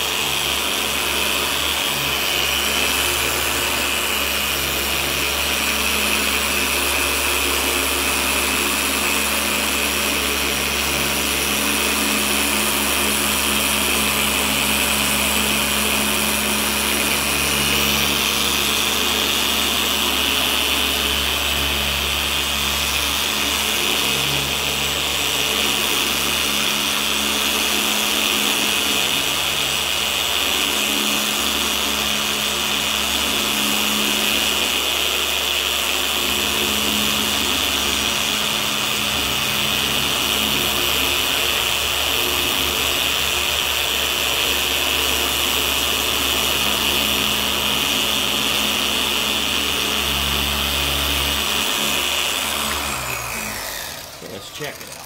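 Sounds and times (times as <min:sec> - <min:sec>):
machine polisher motor whine: 0:00.0 - 0:55.0.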